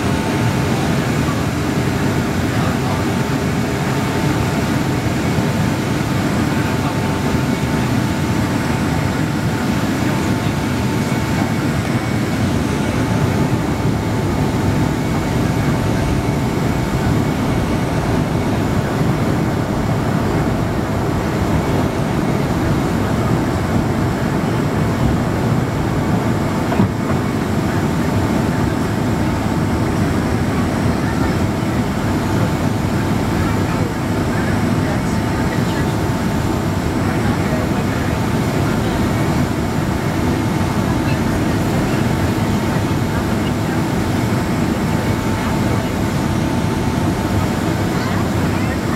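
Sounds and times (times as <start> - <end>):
airplane cabin roar: 0.0 - 48.9
thin steady whine: 0.0 - 48.9.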